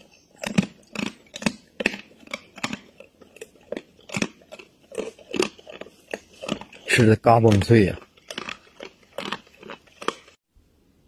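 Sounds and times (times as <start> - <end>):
wild boar chewing food: 0.0 - 10.4.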